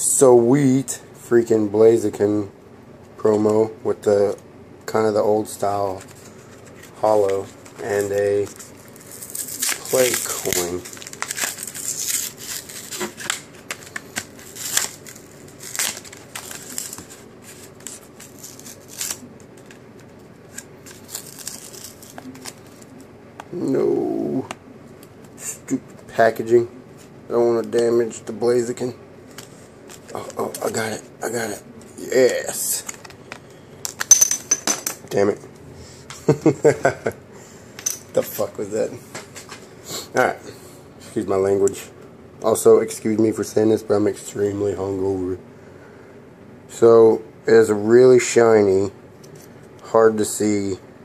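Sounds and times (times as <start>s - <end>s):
plastic packaging crinkling and tearing: 7.8s - 23.0s
coin clattering on desk: 34.0s - 35.0s.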